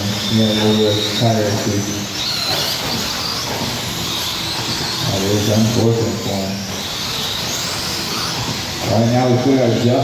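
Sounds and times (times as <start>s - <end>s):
high-pitched electric motor whine: 0.0s - 10.0s.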